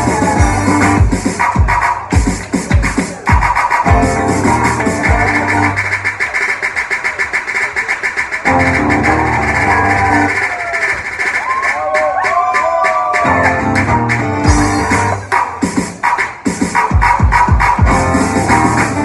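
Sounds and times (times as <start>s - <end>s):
drum kit with fast cymbal beat: 0.0s - 19.0s
electric guitar playing: 3.9s - 6.0s, 8.5s - 10.4s, 13.2s - 15.3s, 17.8s - 19.0s.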